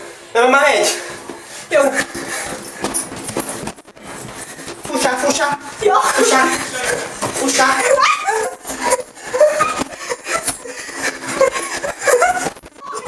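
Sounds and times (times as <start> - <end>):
people laughing and calling out: 5.8 - 13.0.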